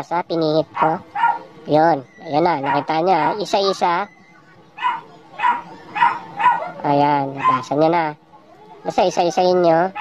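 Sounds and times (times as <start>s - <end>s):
dog barking: 0.7s - 1.5s, 2.5s - 3.4s, 4.8s - 7.8s.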